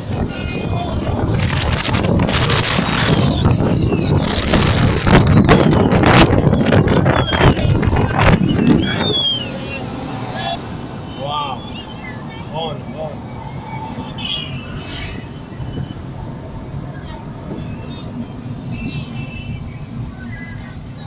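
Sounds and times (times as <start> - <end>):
car engine and road noise: 0.0 - 21.0
voices calling out: 0.0 - 21.0.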